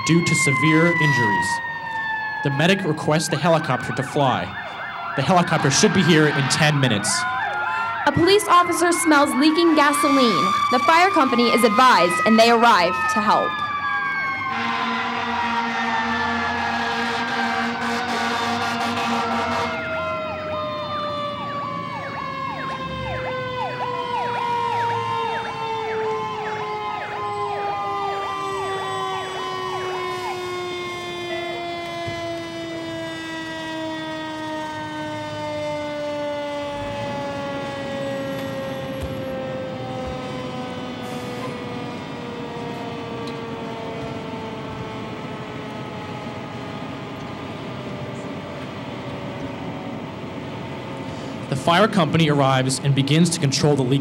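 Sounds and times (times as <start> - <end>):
fast yelping siren: 0.0 - 51.5
wailing siren winding down: 0.0 - 54.0
fire truck horn blaring: 3.3 - 46.6.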